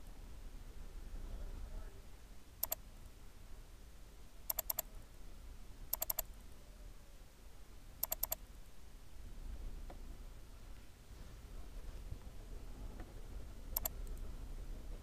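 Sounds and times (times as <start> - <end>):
faint low room hum: 0.0 - 15.0
mouse button clicking: 4.5 - 4.8, 5.9 - 6.2, 8.0 - 8.4, 13.8 - 14.0.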